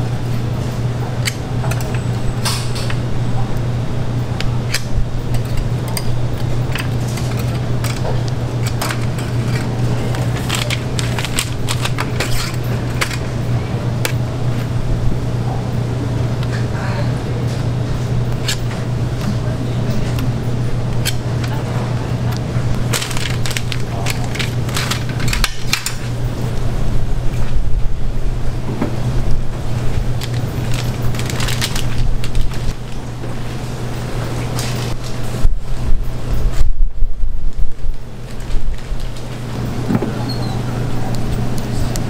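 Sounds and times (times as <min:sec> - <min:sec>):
kitchen equipment humming: 0:00.0 - 0:42.0
metal utensils clinking and scraping: 0:04.7 - 0:13.4, 0:22.9 - 0:26.1.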